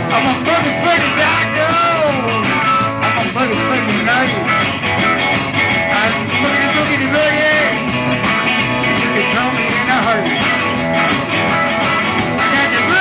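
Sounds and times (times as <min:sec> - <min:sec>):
blues-rock band playing: 0:00.0 - 0:13.0
guitar lead with bending notes: 0:00.0 - 0:13.0.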